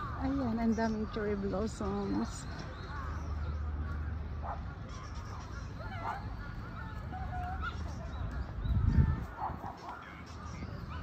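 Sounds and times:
bird calls: 0:00.0 - 0:11.0.

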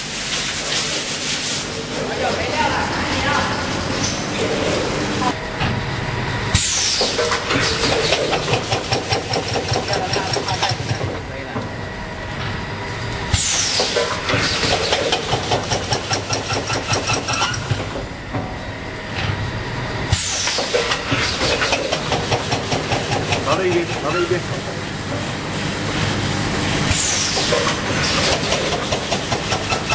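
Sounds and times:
rapid mechanical clicking and rattling: 0:07.0 - 0:11.6, 0:13.8 - 0:18.0, 0:20.5 - 0:24.4, 0:27.4 - 0:29.9.

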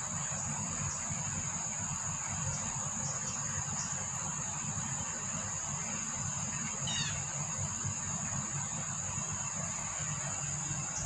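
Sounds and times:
high-pitched insect chirring: 0:06.4 - 0:08.0.

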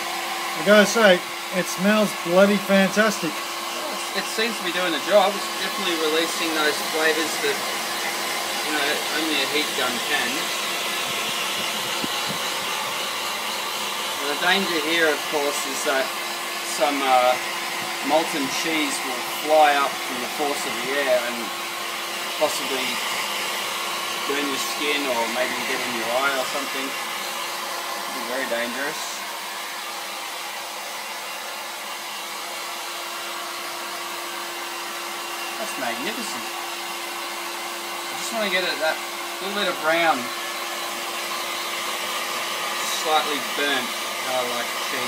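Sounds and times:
heat gun blowing air: 0:00.0 - 0:45.0.

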